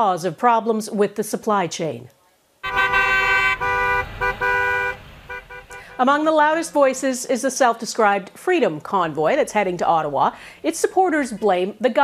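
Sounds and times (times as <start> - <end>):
truck air horns honking: 2.6 - 6.3.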